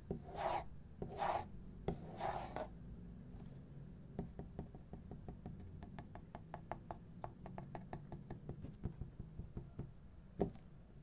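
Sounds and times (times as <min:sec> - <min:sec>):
fingernails scratching paper: 0:00.3 - 0:02.6.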